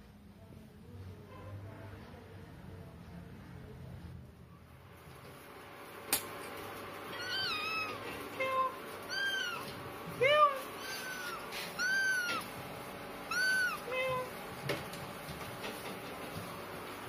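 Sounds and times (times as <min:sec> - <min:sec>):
kittens meowing: 0:07.1 - 0:12.6, 0:13.3 - 0:14.3.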